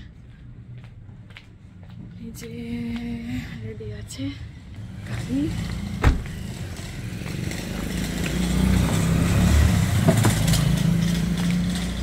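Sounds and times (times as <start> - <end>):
low vehicle engine rumble: 0.0 - 12.0.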